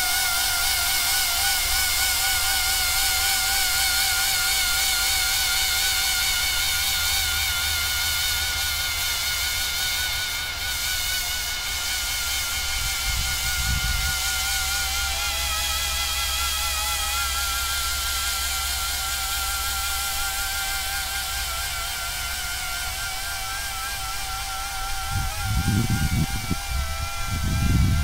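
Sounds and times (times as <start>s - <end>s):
drone motors whining: 0.0s - 28.0s.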